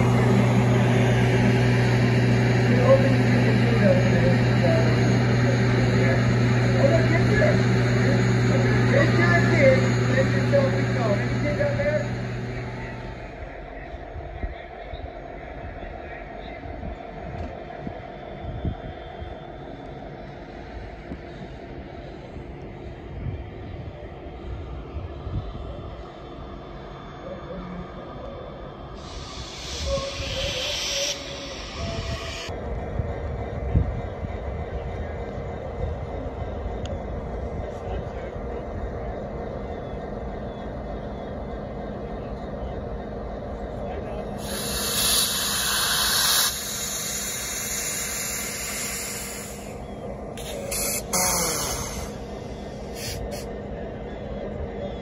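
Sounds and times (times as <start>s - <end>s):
locomotive engine hum: 0.0s - 55.0s
train rolling past: 0.0s - 55.0s
loud hiss bursts: 29.0s - 32.5s, 44.4s - 49.8s, 50.4s - 53.5s.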